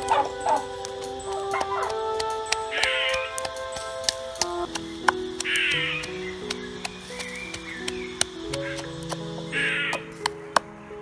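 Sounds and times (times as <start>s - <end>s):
background music of held notes: 0.0s - 11.0s.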